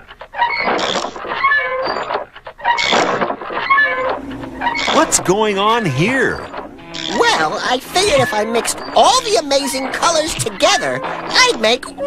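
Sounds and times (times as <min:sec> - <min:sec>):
high chirpy calls: 0:02.7 - 0:12.0.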